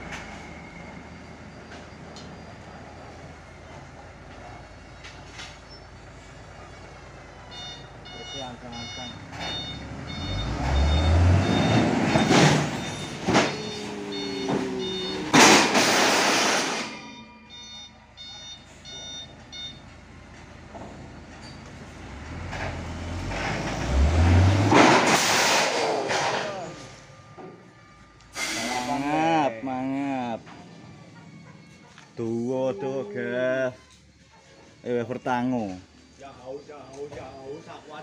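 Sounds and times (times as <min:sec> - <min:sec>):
truck engine revving: 0:05.8 - 0:19.2, 0:21.6 - 0:27.3, 0:28.3 - 0:35.5
repeating electronic beep: 0:07.5 - 0:19.8
steel beams crashing and scraping: 0:12.0 - 0:17.4, 0:23.2 - 0:27.0.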